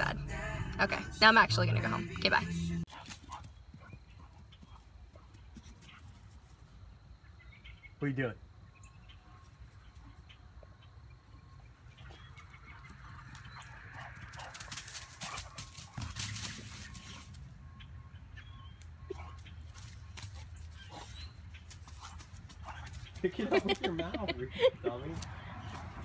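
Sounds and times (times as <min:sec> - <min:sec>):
footsteps through dry leaves: 0:14.3 - 0:17.4.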